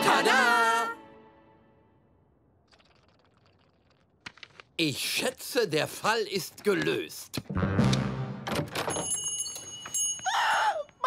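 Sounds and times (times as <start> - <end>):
shop door bell ringing: 8.8 - 10.4.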